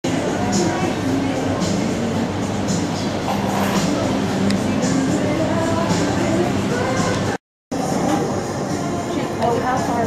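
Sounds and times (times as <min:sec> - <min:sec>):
hubbub of many voices: 0:00.1 - 0:10.0.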